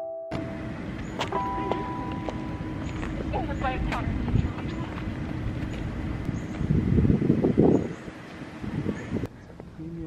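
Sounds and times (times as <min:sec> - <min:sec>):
keyboard music: 0:00.0 - 0:03.9
steady high tone: 0:00.0 - 0:05.1
road traffic rumble: 0:00.3 - 0:10.0.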